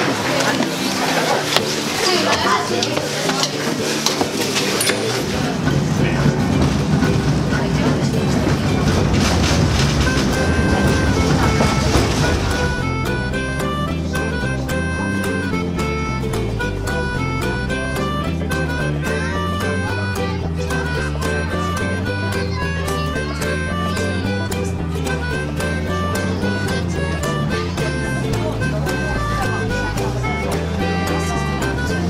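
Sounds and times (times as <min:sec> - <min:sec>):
train carriage running noise: 0:00.0 - 0:14.4
murmur of passengers talking: 0:00.0 - 0:32.0
string music with steady beat: 0:00.0 - 0:32.0.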